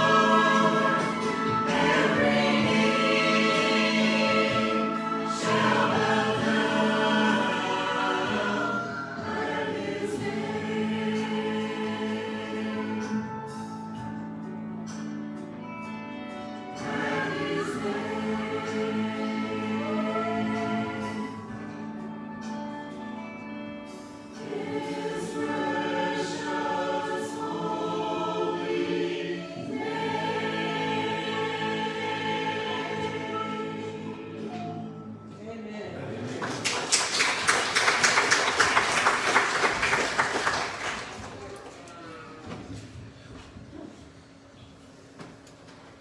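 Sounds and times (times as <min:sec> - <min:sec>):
sustained instrumental accompaniment: 0:00.0 - 0:35.6
church choir singing in harmony: 0:00.0 - 0:41.4
congregation clapping: 0:36.2 - 0:42.0.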